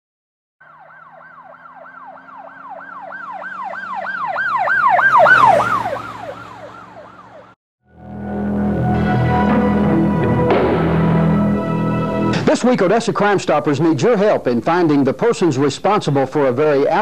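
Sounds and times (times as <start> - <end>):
emergency siren yelping: 0.6 - 7.6
vehicle passing by: 0.6 - 7.6.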